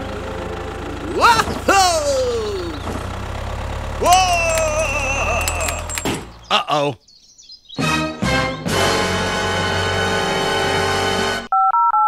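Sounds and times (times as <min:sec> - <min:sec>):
low engine-like hum: 0:00.0 - 0:06.6
cartoonish gliding vocal cry: 0:01.1 - 0:02.8, 0:04.0 - 0:05.9
electronic telephone tone: 0:11.5 - 0:12.0.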